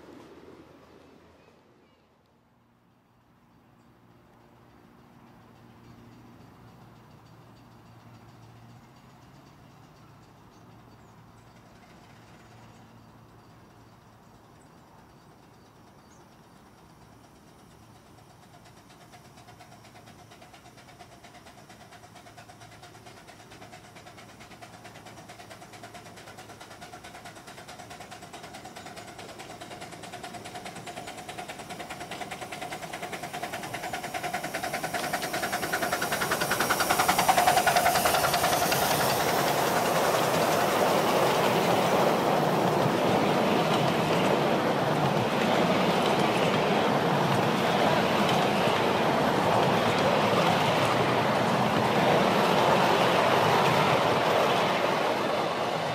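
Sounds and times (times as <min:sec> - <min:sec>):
miniature steam train running: 0:02.9 - 0:55.9
coaches rolling on rails: 0:03.4 - 0:55.9.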